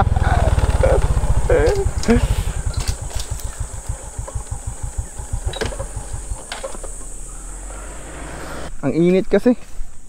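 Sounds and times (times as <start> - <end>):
motorcycle engine idling: 0.0 - 8.7.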